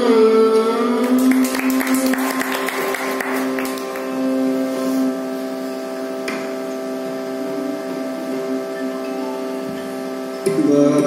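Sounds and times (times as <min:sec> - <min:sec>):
steady drone: 0:00.5 - 0:11.0.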